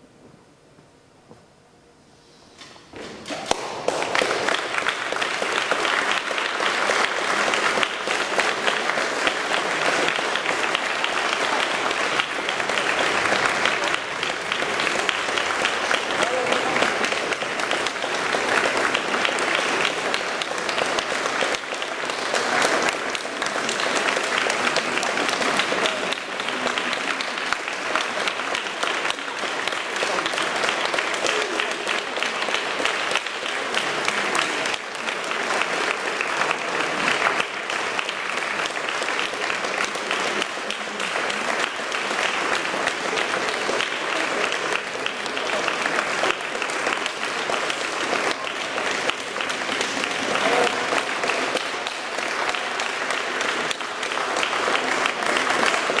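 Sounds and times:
audience applauding: 3.2s - 56.0s
voices in crowd: 4.7s - 56.0s.

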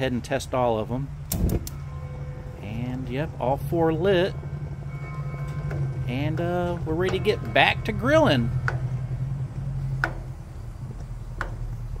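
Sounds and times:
low steady hum: 0.0s - 12.0s
spark igniter clicking: 1.3s - 1.8s.

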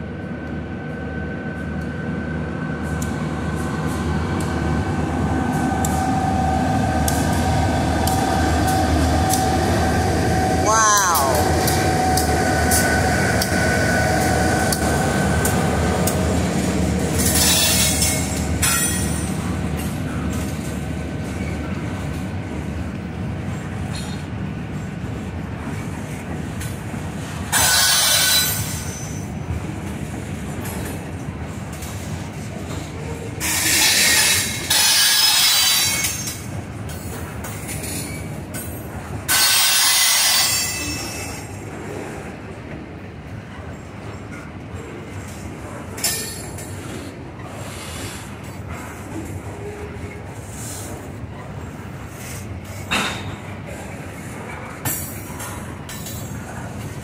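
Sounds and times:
diesel locomotive engine hum: 0.0s - 57.0s
train wheels rumbling on rail: 0.0s - 57.0s.

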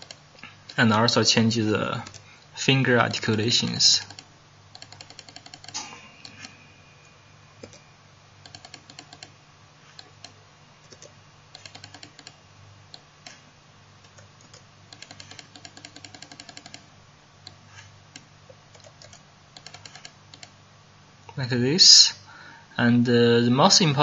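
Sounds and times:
computer keyboard and mouse clicking: 0.0s - 0.9s, 2.0s - 2.3s, 4.0s - 6.6s, 7.6s - 7.8s, 8.4s - 9.3s, 9.9s - 13.4s, 14.0s - 16.8s, 17.4s - 20.5s
steady low hum: 0.0s - 24.0s.

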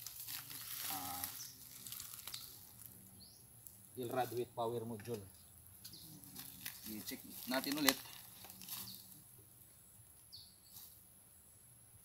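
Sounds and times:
faint bird chirp: 0.5s - 7.6s, 8.2s - 12.0s.

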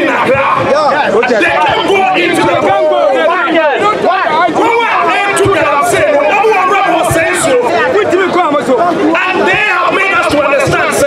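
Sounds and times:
faint crowd chatter: 0.0s - 11.0s
man speaking emphatically: 0.0s - 11.0s.

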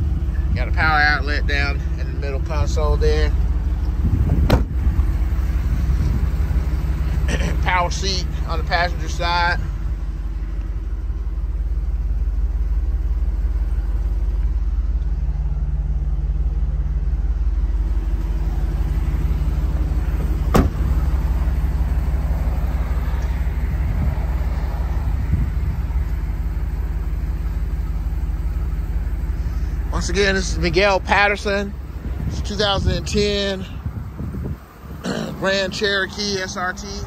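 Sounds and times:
car engine idling: 0.0s - 37.0s
car door shutting: 4.3s - 5.0s, 20.1s - 21.1s.

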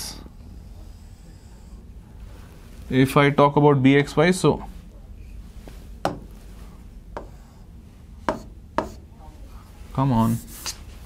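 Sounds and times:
pen tapping on board: 6.0s - 6.3s, 7.2s - 7.4s, 8.3s - 9.0s.

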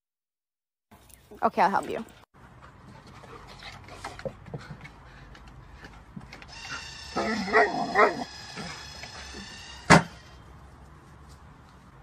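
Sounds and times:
dog whining and yipping: 6.7s - 8.8s.

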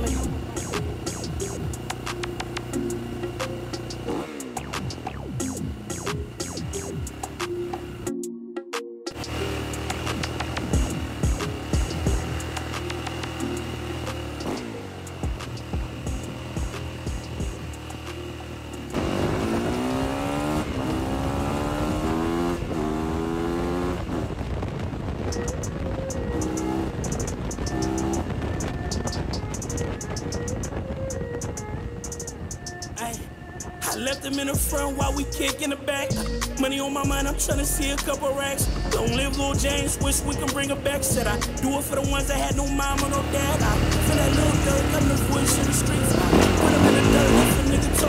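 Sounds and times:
dirt bike engine revving: 0.0s - 8.1s, 9.1s - 24.7s, 25.3s - 30.5s, 36.1s - 48.0s
hip-hop beat with deep bass: 0.0s - 22.8s, 24.8s - 48.0s.

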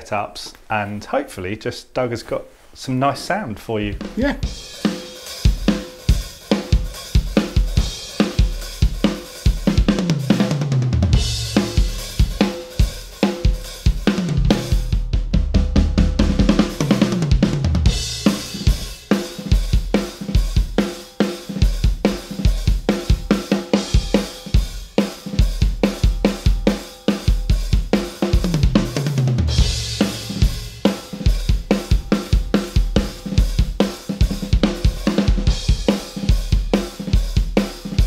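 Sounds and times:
drum kit rock groove: 3.1s - 38.0s.

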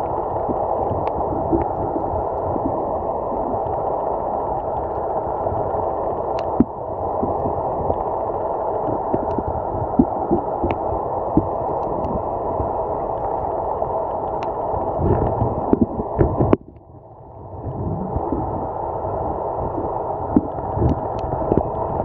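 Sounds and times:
underwater low rushing: 0.0s - 22.0s.

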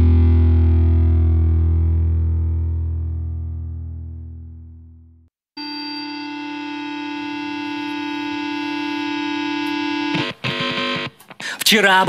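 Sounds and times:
droning synthesizer chord: 5.6s - 10.2s.

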